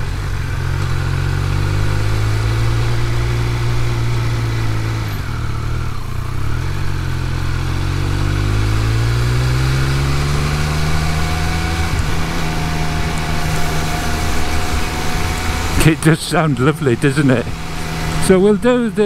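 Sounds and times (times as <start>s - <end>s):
motorcycle engine: 0.0s - 19.0s.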